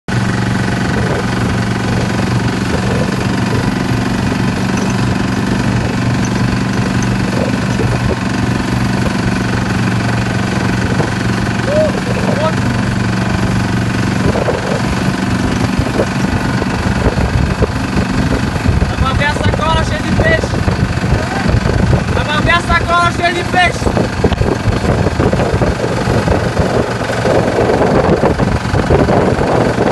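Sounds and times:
boat engine humming: 0.0 - 29.9
voices: 11.6 - 12.7.

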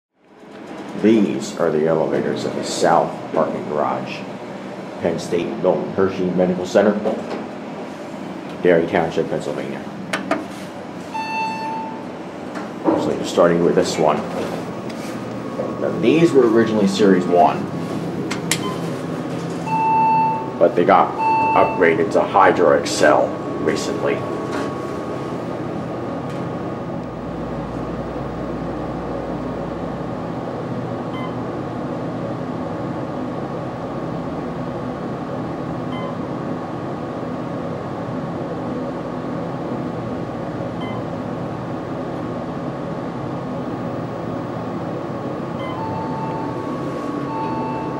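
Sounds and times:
elevator hydraulic hum: 0.3 - 47.9
steady electronic beep: 11.1 - 12.1, 15.5 - 17.6, 18.6 - 18.9, 19.6 - 25.9, 31.1 - 31.4, 45.6 - 47.9
faint electronic beep: 21.1 - 22.0.

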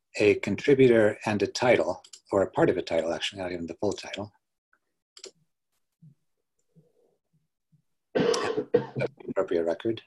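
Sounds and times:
person coughing: 8.2 - 9.2.

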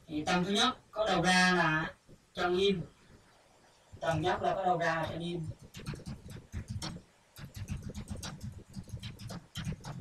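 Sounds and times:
keyboard typing clicks: 5.5 - 10.0.

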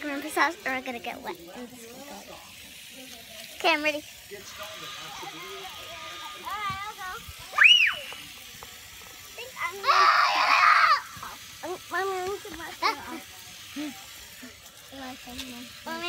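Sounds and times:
children chattering: 0.0 - 16.0
children squealing and shrieking: 5.6 - 8.4, 9.5 - 11.4.

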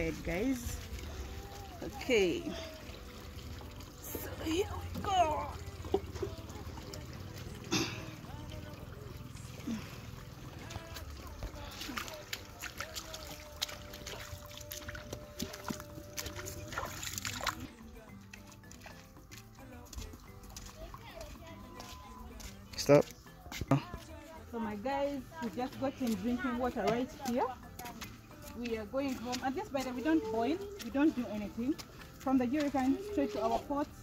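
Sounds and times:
footsteps splashing in water: 0.0 - 24.2, 25.4 - 34.0
water sloshing: 0.0 - 34.0.

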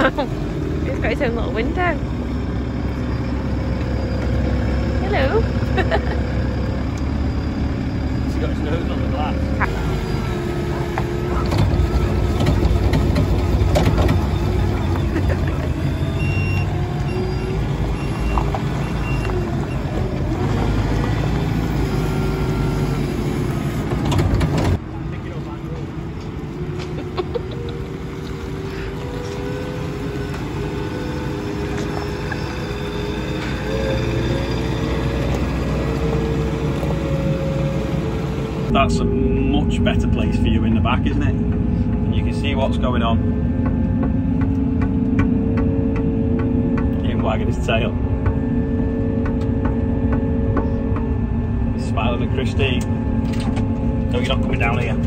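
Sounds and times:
diesel engine running: 0.0 - 55.0
faint whine: 36.5 - 55.0.

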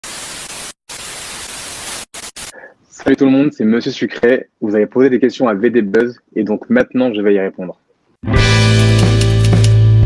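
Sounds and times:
television static hiss: 0.0 - 3.4.

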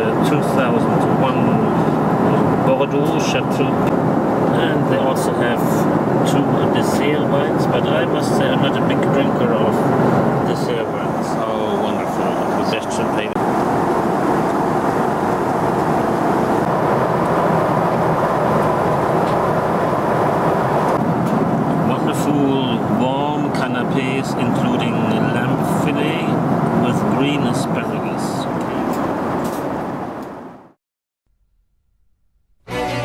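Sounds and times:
airflow rush in aircraft cabin: 0.0 - 30.8
jet engines: 0.0 - 30.8.

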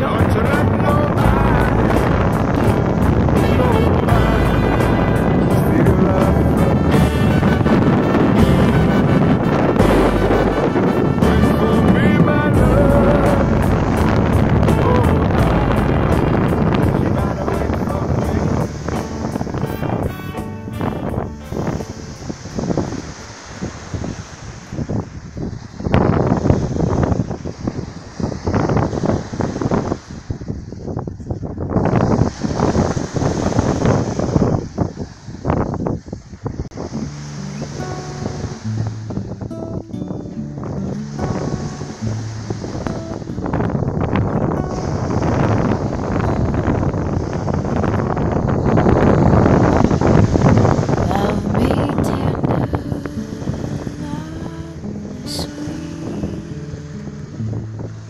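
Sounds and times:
steady low notes: 0.0 - 23.2, 36.6 - 58.0
wind buffeting microphone: 0.0 - 58.0.

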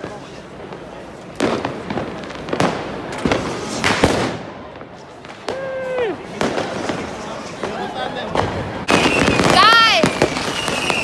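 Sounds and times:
crowd chatter: 0.0 - 11.0
firecracker bangs: 1.4 - 5.7, 6.3 - 11.0
long held shout: 5.5 - 6.2.

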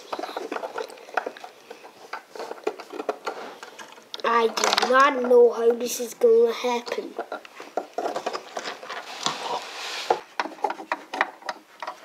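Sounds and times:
scraping rub: 0.0 - 3.8, 7.6 - 12.0.

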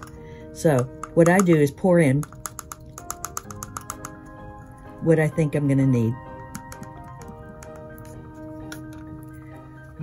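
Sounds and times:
soft background music: 0.0 - 10.0
jar tapping over plastic cup: 0.7 - 4.2, 6.4 - 7.9.

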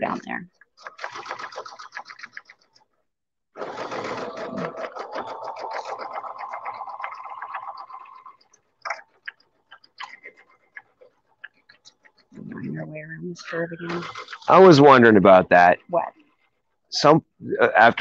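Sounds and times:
sewing machine stitching: 0.8 - 2.7, 3.6 - 12.4, 13.7 - 16.5.

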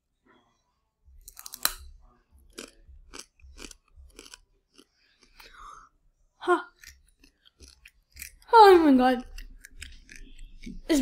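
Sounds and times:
chewing close to microphone: 2.5 - 5.4
tortilla chip crunching: 2.5 - 5.4.

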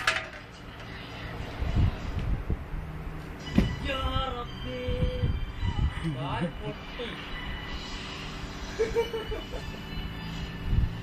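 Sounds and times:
air-conditioner units humming: 0.0 - 11.0.

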